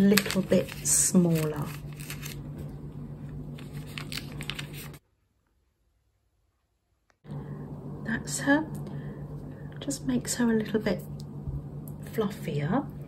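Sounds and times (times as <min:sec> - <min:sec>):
handling fleece and paper: 0:00.0 - 0:02.8, 0:03.5 - 0:05.0
steady low hum: 0:00.0 - 0:05.0, 0:07.1 - 0:13.0.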